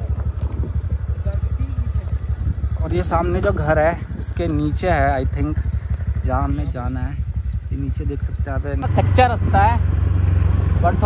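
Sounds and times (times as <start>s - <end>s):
scooter engine idling: 0.0s - 11.0s.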